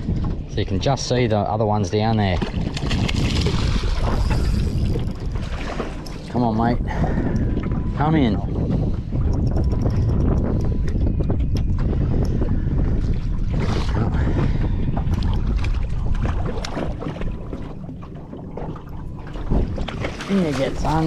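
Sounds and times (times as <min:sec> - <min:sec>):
wind buffeting microphone: 0:00.0 - 0:21.0
fish splashing in water: 0:02.4 - 0:06.0.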